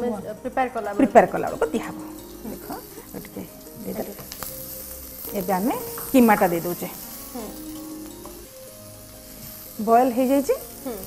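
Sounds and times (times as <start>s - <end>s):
meat sizzling in hot oil: 0.9s - 11.0s.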